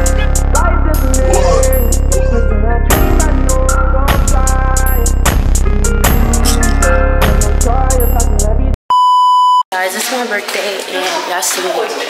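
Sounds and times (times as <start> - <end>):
electronic music: 0.0 - 3.7
voices: 1.0 - 1.9
censor bleep tone: 8.9 - 9.6.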